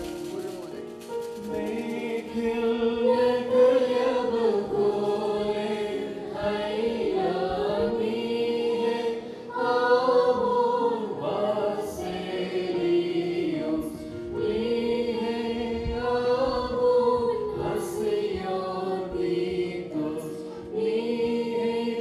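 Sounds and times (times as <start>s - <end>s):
group singing a chant: 1.5s - 22.0s.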